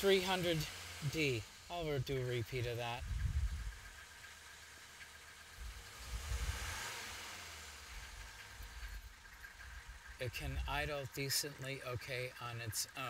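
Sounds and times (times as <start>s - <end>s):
diesel engine idling: 0.0s - 13.0s.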